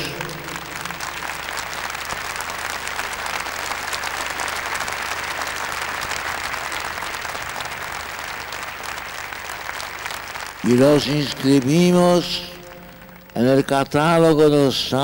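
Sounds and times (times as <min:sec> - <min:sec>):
large crowd applauding: 0:00.0 - 0:15.0.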